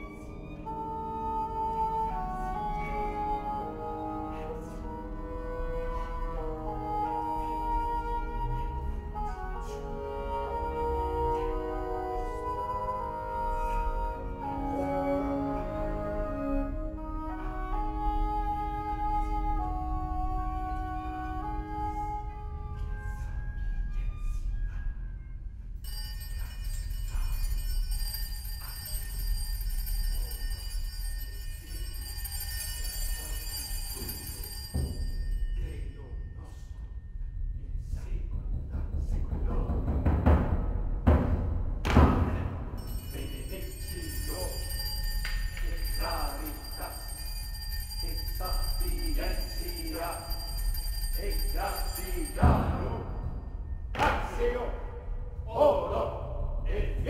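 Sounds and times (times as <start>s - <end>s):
high held tones: 25.9s - 36.9s, 42.8s - 53.9s.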